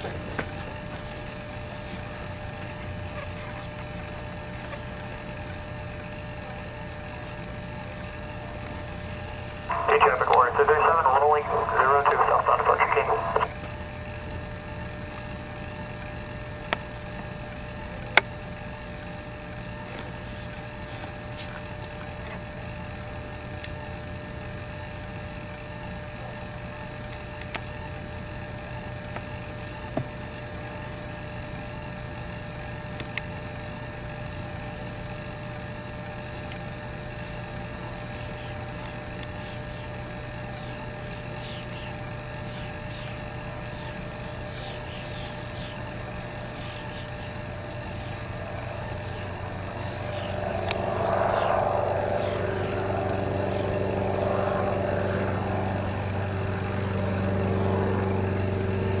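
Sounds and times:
light airplane engine running: 0.0 - 59.0.

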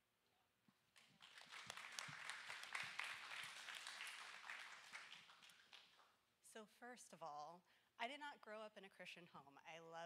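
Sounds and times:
audience applauding: 1.0 - 6.1.

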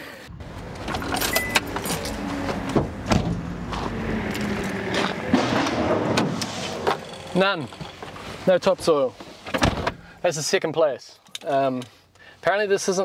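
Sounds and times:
vehicle rumble: 0.2 - 10.2.

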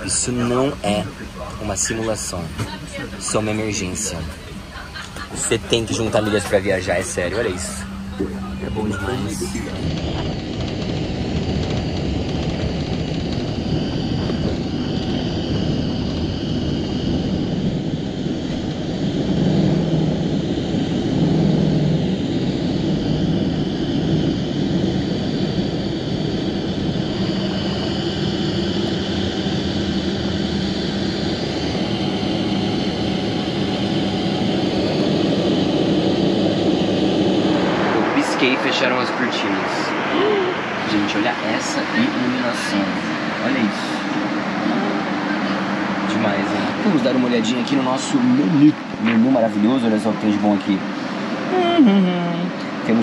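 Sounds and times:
jet engines at takeoff power: 0.0 - 53.0.

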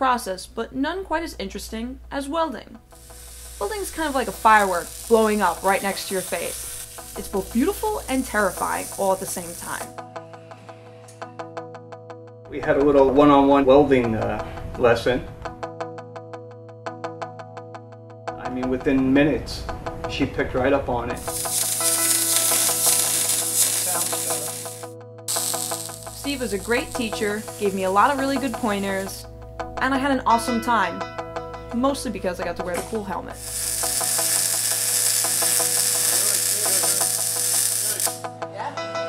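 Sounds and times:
background music with plucked notes: 0.9 - 39.0
welding arc crackling: 2.9 - 10.0, 21.2 - 29.3, 32.7 - 38.3.

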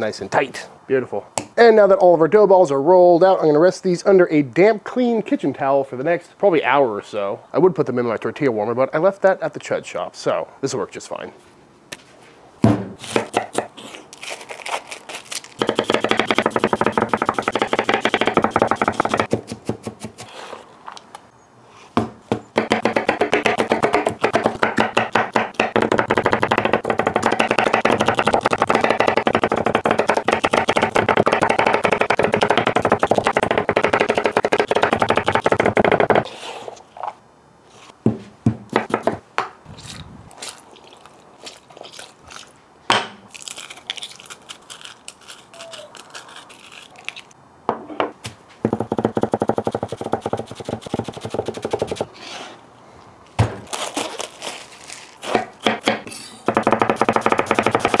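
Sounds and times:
knife chopping on wooden board: 15.6 - 20.3, 22.0 - 36.2, 55.3 - 58.0.

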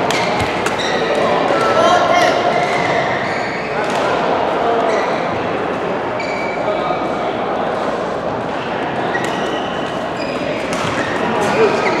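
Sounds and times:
voices echoing in hall: 0.0 - 12.0
shoe squeaks on court floor: 0.1 - 1.2, 2.6 - 3.8, 6.2 - 6.7, 9.0 - 12.0.

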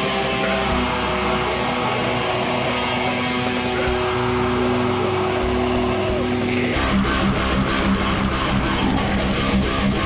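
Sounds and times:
distorted electric guitar chord: 0.0 - 10.0
low guitar notes chugging: 0.0 - 10.0.

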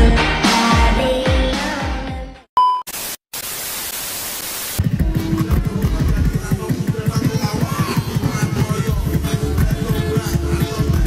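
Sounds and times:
music: 0.0 - 2.5, 4.8 - 6.7, 8.7 - 11.0
television static hiss: 2.9 - 4.8.

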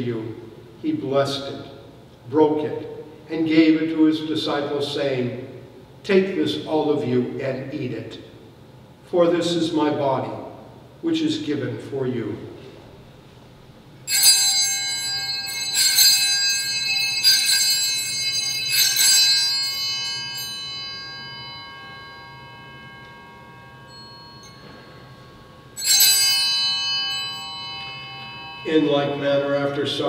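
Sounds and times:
altar bells ringing: 14.0 - 30.0.

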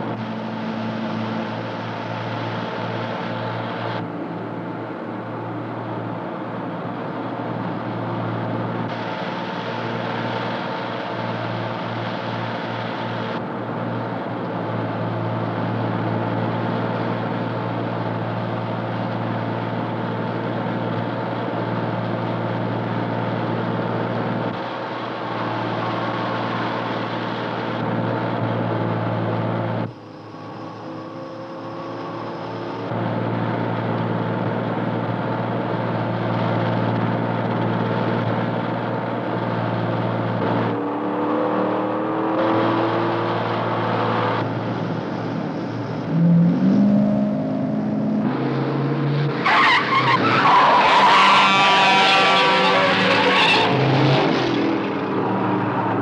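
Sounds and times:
car engines at highway speed: 0.0 - 56.0
tires squealing: 40.5 - 56.0.

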